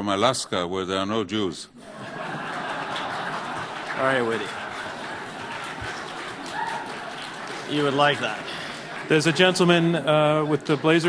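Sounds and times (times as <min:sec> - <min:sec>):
audience settling: 0:01.8 - 0:11.0.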